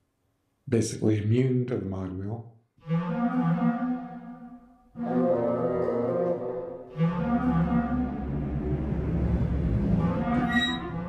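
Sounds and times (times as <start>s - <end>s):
orchestral phrases: 2.8s - 11.0s
deep bass: 7.8s - 11.0s.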